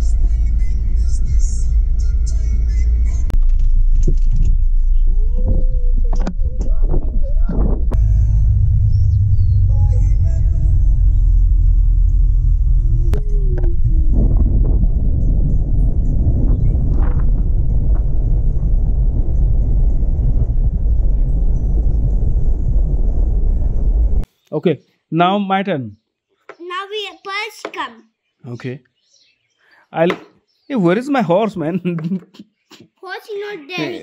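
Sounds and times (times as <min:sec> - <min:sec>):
wind and road noise rumble: 0:00.0 - 0:24.3.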